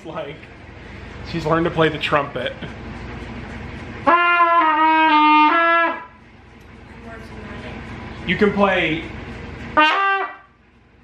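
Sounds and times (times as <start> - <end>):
trumpet tone: 4.0 - 6.2, 9.7 - 10.6.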